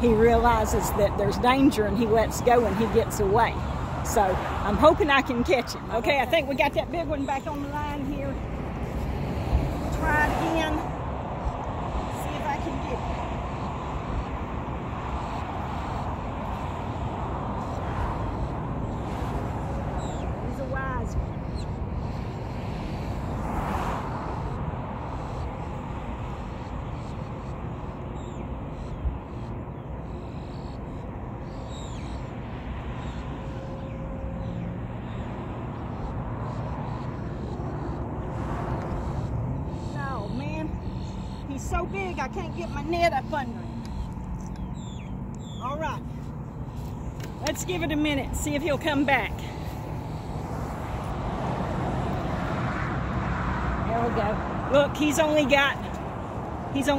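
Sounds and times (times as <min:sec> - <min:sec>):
low rumble of road traffic: 0:00.0 - 0:56.9.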